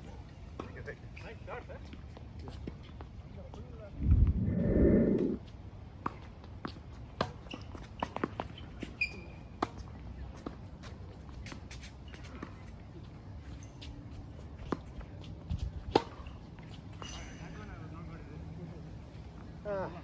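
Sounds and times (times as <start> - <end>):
shoe squeak: 9.0 - 9.4.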